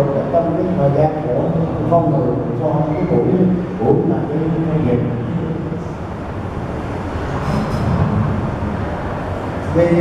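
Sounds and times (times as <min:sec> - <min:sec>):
low rumbling noise: 0:00.0 - 0:10.0.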